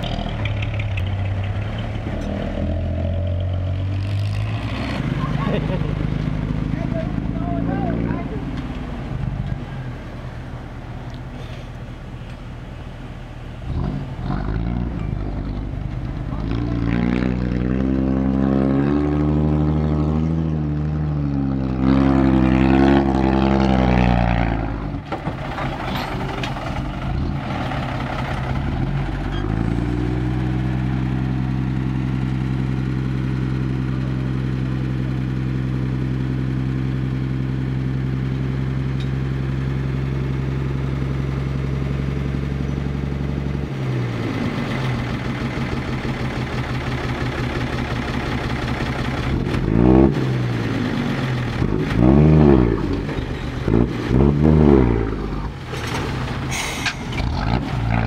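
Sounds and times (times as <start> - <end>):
diesel truck engine revving: 0.0 - 58.0.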